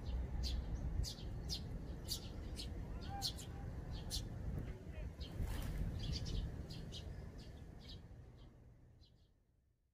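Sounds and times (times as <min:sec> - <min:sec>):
sparrows chirping: 0:00.0 - 0:09.9.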